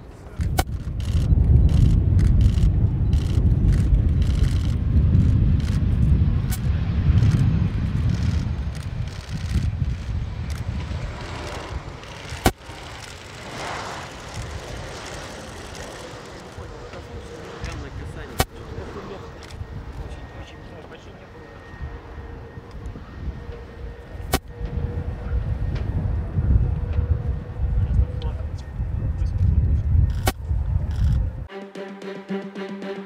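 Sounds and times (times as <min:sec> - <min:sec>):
jet engines rumbling: 0:00.0 - 0:33.0.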